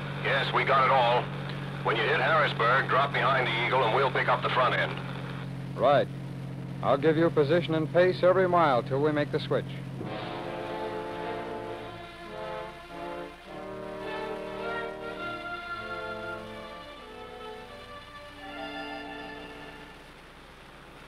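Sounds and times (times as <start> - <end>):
dramatic sustained chords: 9.9 - 20.1.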